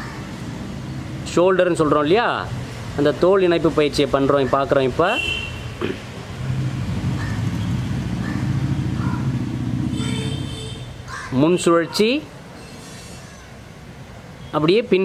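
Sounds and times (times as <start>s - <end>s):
vehicle engine passing by: 6.3s - 10.5s.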